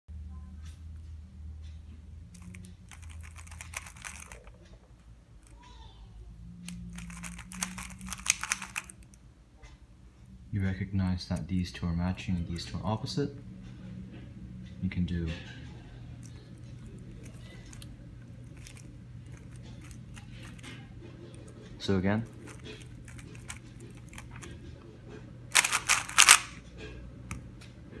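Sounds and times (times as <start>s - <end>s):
plastic puzzle cube clicking: 2.4s - 4.6s, 6.7s - 9.1s, 22.3s - 24.5s, 25.5s - 26.6s.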